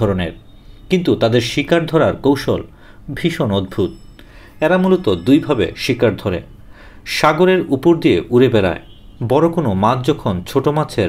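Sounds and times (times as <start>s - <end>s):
person narrating: 4.6s - 6.5s.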